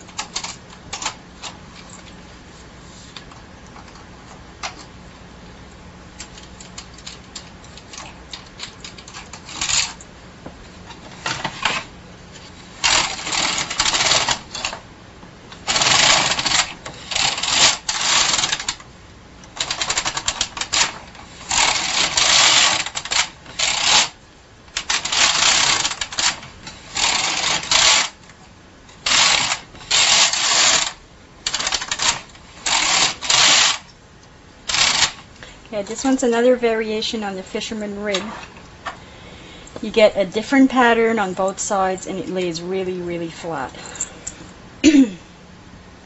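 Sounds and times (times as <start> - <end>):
knitting machine carriage clattering: 0.0 - 2.0, 12.8 - 14.8, 15.6 - 18.8, 19.6 - 24.2, 24.8 - 28.2, 29.0 - 33.9, 34.7 - 35.2.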